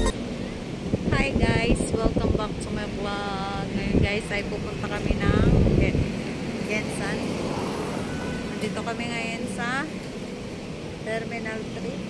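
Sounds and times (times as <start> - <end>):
road traffic rumbling: 0.0 - 12.0
vehicle passing: 5.3 - 10.8.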